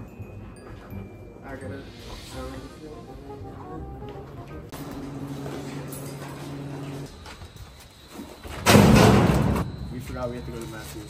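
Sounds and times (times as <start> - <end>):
trash thrown into metal dumpster: 8.5 - 9.9
loud crash: 8.6 - 9.9.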